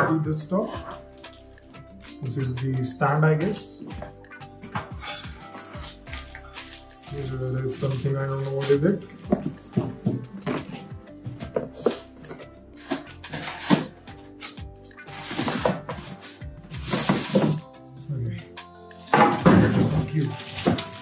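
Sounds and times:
background music: 0:00.0 - 0:21.0
foam packaging crinkling: 0:05.2 - 0:10.9, 0:12.9 - 0:17.6, 0:19.6 - 0:21.0.

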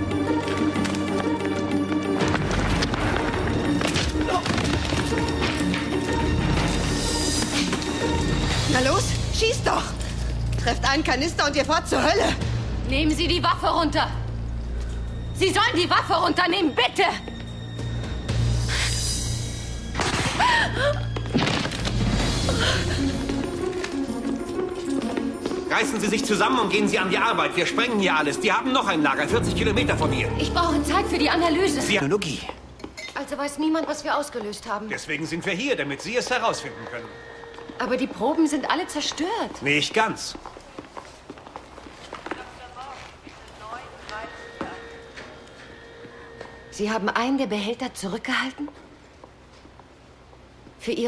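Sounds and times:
footsteps on hard floor: 0:00.3 - 0:08.6, 0:21.1 - 0:26.0, 0:36.0 - 0:46.6.

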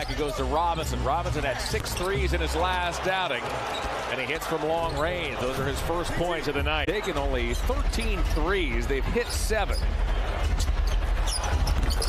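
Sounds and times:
arena crowd noise: 0:00.0 - 0:12.0
sneakers squeaking: 0:01.4 - 0:02.7, 0:03.4 - 0:05.5, 0:09.2 - 0:12.0.

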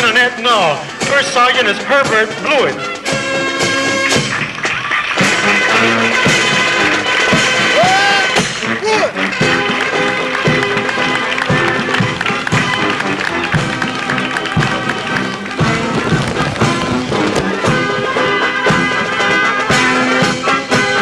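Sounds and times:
marching band playing: 0:00.0 - 0:21.0.

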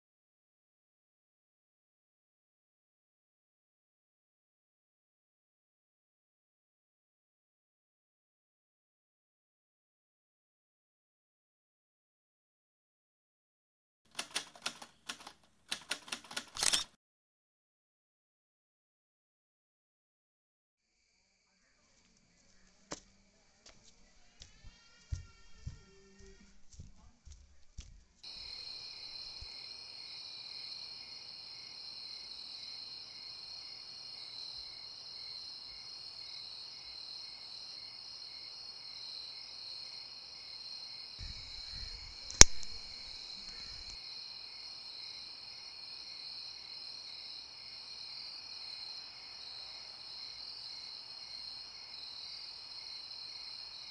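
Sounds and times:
typewriter keys clacking: 0:14.1 - 0:16.9
crickets trilling: 0:28.3 - 0:53.9.

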